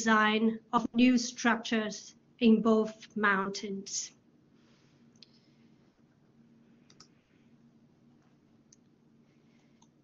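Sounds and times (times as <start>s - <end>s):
steady low hum: 0.0s - 10.0s
faint clicks: 6.9s - 7.1s.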